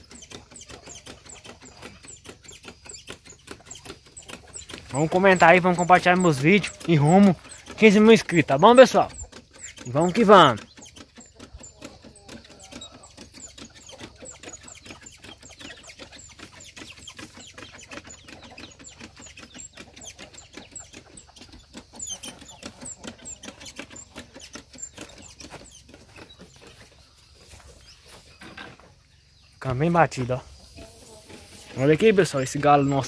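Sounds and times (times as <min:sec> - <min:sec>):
backpack sprayer clicking and patter: 0:00.0 - 0:27.6, 0:31.2 - 0:33.0.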